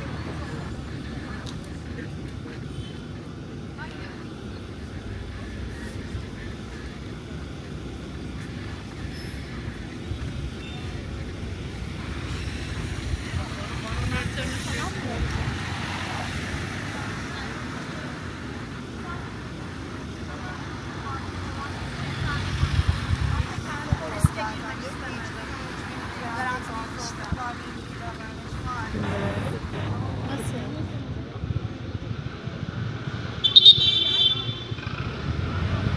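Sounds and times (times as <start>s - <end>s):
cars passing close by: 0.0s - 35.9s
steady traffic rumble: 0.0s - 35.9s.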